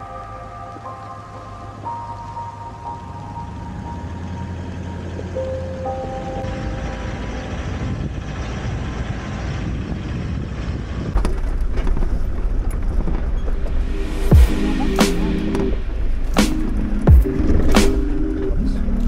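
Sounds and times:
held musical notes: 0.0 - 8.2, 13.6 - 19.0
vehicle driving rumble: 0.0 - 19.0
wind on microphone: 7.5 - 17.8.

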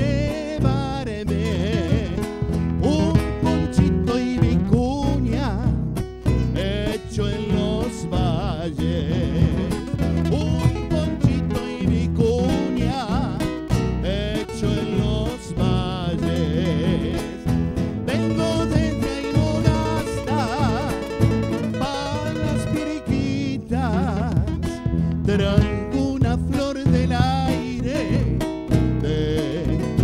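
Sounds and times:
bass drum beat: 0.0 - 30.0
nylon-string guitars strummed: 0.0 - 30.0.

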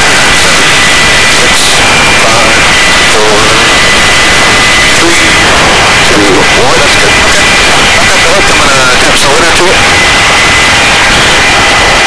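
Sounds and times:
helicopter rotor rush: 0.0 - 12.0
high turbine whine: 0.0 - 12.0.

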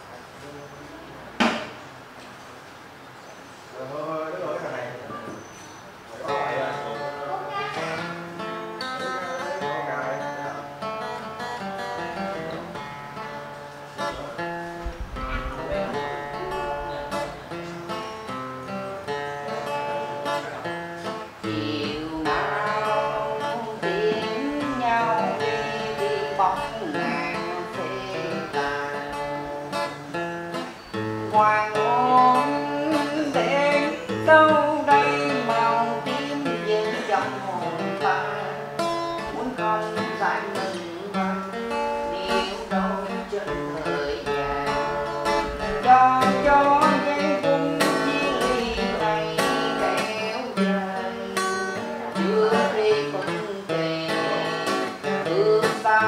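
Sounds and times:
strummed acoustic guitar: 1.3 - 3.0, 5.1 - 56.0
man singing: 6.2 - 12.9, 19.0 - 30.6, 31.2 - 56.0.

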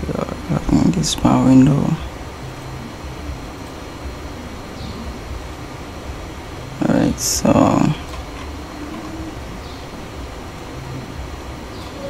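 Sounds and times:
faint hiss: 0.0 - 12.0
low rumble: 0.0 - 12.0.

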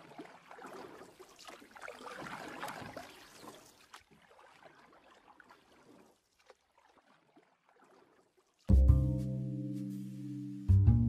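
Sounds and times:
rushing splashing water: 0.0 - 8.2.

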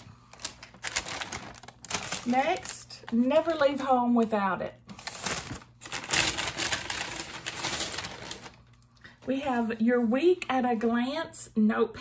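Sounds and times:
paper rustling: 0.0 - 3.3, 4.9 - 8.6.

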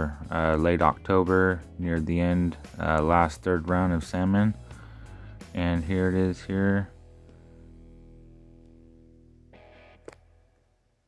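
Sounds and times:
guitar chords ringing: 0.0 - 11.0.

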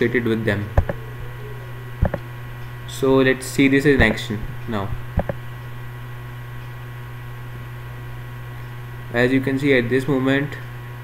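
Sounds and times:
low electrical hum with hiss: 0.0 - 11.0.

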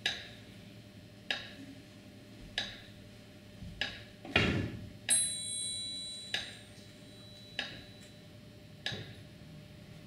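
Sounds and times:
high ringing tone: 5.1 - 8.4.

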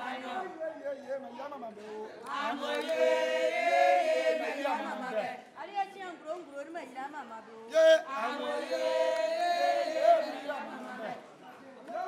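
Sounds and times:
women singing together: 0.0 - 0.5, 2.2 - 6.0, 7.7 - 12.0.

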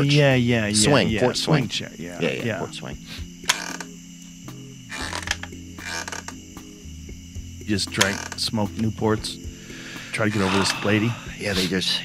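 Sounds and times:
soft background music: 0.0 - 12.0
porch swing chains creaking: 3.2 - 6.8, 7.6 - 9.3, 10.1 - 11.7.

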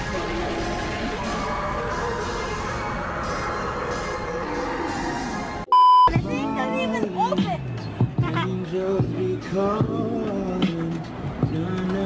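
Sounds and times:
background music: 0.0 - 12.0
loud bleep tone: 5.7 - 6.2.

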